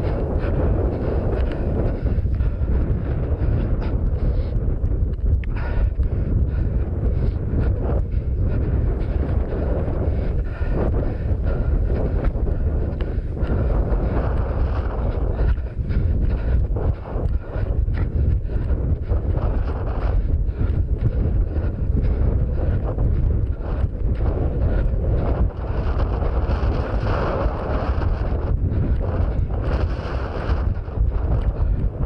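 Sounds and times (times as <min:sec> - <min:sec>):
wind rumbling on microphone: 0:00.0 - 0:32.0.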